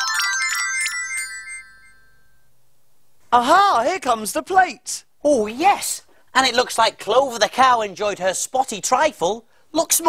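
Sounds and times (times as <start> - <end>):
twinkly bell-like electronic notes: 0.0 - 2.5.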